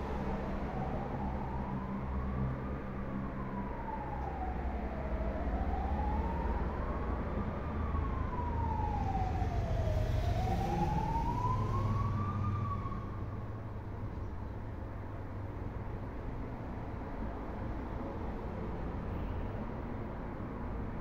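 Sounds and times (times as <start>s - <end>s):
traffic rumble: 0.0s - 21.0s
siren wailing: 0.3s - 13.4s.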